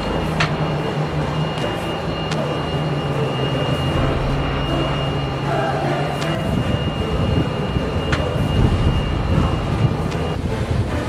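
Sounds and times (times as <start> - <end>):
high whine: 0.0 - 11.0
ship rumbling: 0.0 - 11.0
wind noise on microphone: 6.2 - 11.0.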